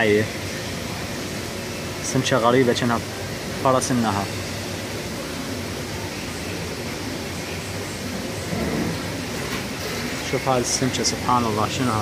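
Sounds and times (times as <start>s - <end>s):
aquarium filters and bubblers humming: 0.0s - 12.0s.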